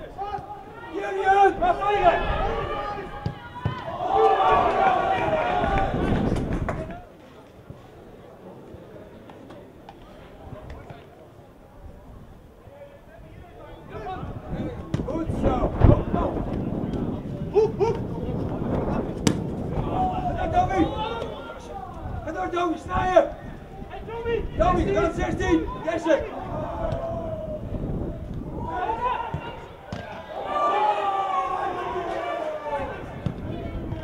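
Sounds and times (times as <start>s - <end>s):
players shouting: 0.0s - 7.0s, 19.2s - 34.0s
open-air crowd: 0.0s - 34.0s
wind noise: 4.3s - 7.1s, 13.3s - 29.8s, 32.7s - 34.0s
football kicked: 14.8s - 15.2s, 19.1s - 19.6s, 29.3s - 30.2s.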